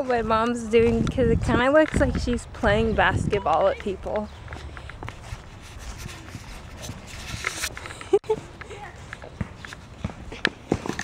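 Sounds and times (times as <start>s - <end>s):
low wind rumble on microphone: 0.0s - 7.7s
footsteps: 0.0s - 11.0s.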